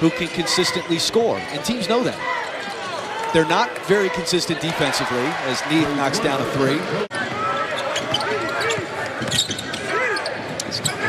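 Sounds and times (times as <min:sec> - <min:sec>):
arena crowd noise: 0:00.0 - 0:11.0
sneakers squeaking on hardwood: 0:07.5 - 0:11.0.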